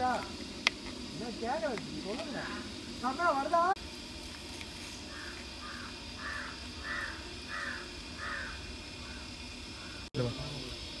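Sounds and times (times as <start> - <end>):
bird calling: 2.2 - 3.1, 5.0 - 10.1.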